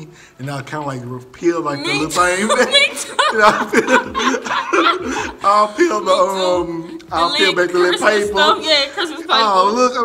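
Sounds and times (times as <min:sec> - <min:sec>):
man and woman laughing: 0:02.2 - 0:08.4.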